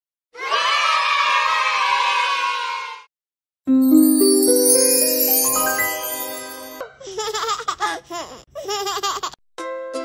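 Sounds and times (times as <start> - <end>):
children cheering and shouting: 0.4 - 3.0.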